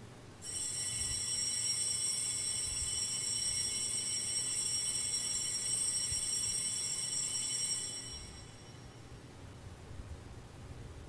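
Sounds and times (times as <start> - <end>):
altar bells ringing: 0.4 - 9.2.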